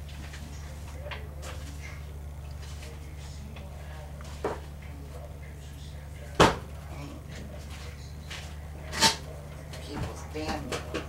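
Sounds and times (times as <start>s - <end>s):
faint background voices: 0.0s - 11.0s
steady low hum: 0.0s - 11.0s.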